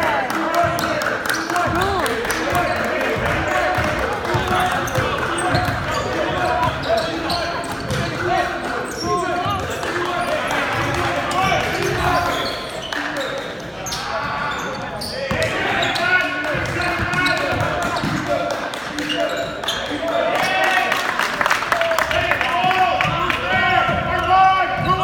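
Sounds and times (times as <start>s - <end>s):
crowd voices calling out: 0.0s - 25.0s
basketball bouncing on hardwood: 1.7s - 8.3s.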